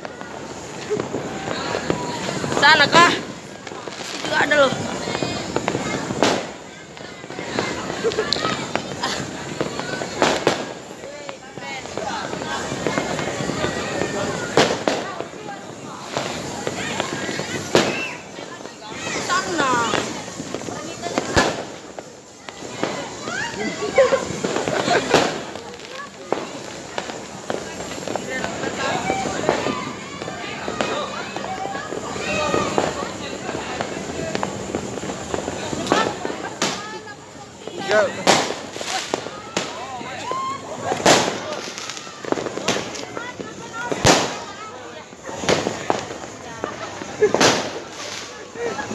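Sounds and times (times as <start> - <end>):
firecrackers cracking and popping: 0.0 - 48.9
loud firework bang: 0.0 - 48.9
people's voices: 0.0 - 48.9.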